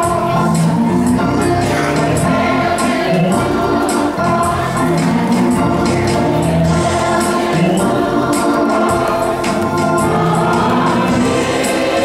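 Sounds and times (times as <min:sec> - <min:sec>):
gospel choir singing: 0:00.0 - 0:12.0
steady beat: 0:00.0 - 0:12.0.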